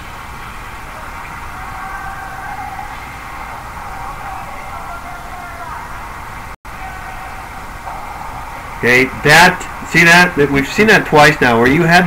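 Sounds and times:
hockey rink background noise: 0.0s - 12.0s.

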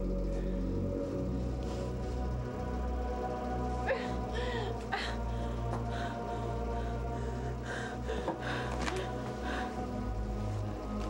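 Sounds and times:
low droning score music: 0.0s - 11.0s
woman gasping: 3.8s - 10.0s.

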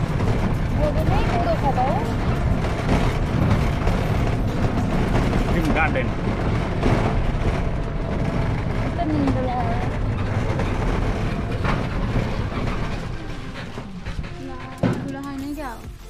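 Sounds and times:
loud noisy din with low rumble: 0.0s - 16.0s.

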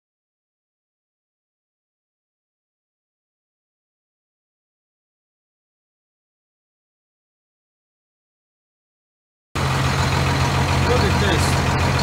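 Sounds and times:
diesel engine idling: 9.6s - 12.0s.

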